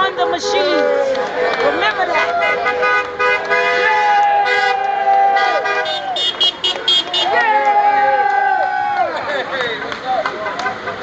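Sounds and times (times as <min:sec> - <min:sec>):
crowd shouting: 0:00.0 - 0:11.0
vehicle horn long blast: 0:02.1 - 0:04.8, 0:05.4 - 0:07.3.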